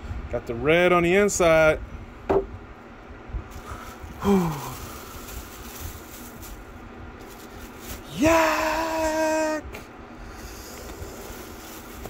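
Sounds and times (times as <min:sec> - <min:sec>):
tissue paper rustling: 0:03.5 - 0:09.0, 0:11.0 - 0:12.0
vocal exclamation: 0:08.1 - 0:09.8.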